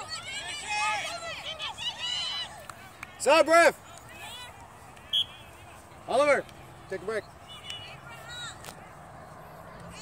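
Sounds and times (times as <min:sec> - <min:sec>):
people shouting calls: 0:00.0 - 0:06.4.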